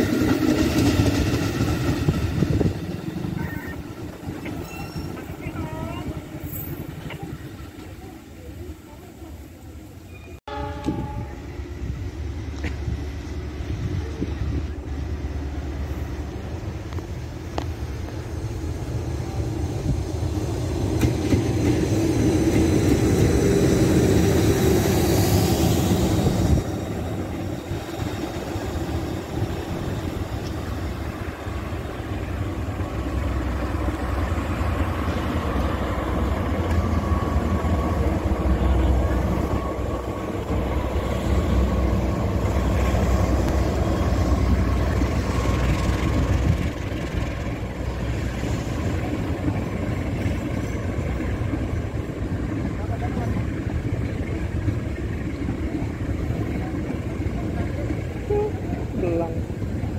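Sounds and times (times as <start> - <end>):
train wheels rumbling on rail: 0.0 - 59.9.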